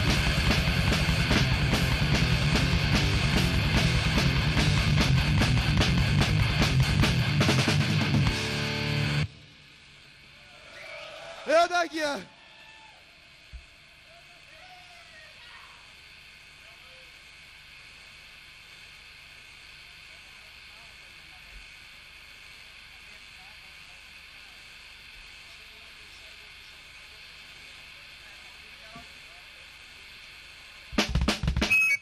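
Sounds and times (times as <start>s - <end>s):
amplifier hiss: 0.0s - 32.0s
snare and kick drum hits: 31.0s - 31.8s.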